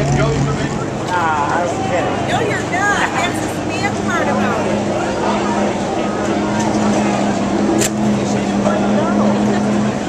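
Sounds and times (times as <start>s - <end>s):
indistinct crowd voices: 0.0s - 10.0s
race car engines droning: 0.0s - 10.0s.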